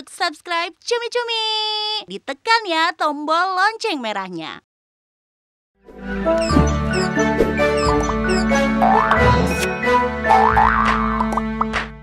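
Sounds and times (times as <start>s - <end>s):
upbeat cartoon jingle: 6.3s - 11.3s.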